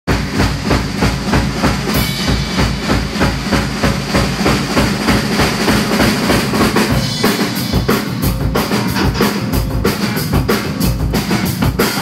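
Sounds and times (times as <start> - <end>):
fast drum beat: 0.1 - 12.0
live rock band playing: 0.1 - 12.0.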